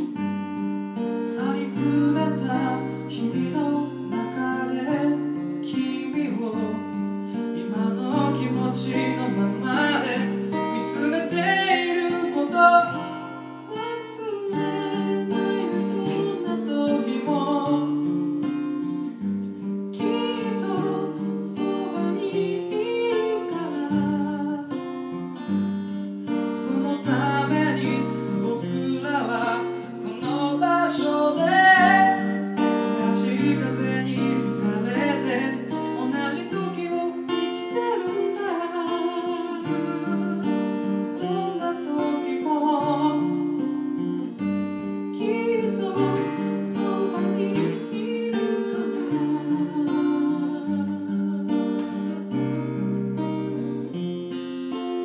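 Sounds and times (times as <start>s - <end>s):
person singing: 0.0s - 0.3s, 1.2s - 18.2s, 19.9s - 25.1s, 26.5s - 44.4s, 45.0s - 53.6s, 54.7s - 55.0s
acoustic guitar chords: 0.0s - 55.0s.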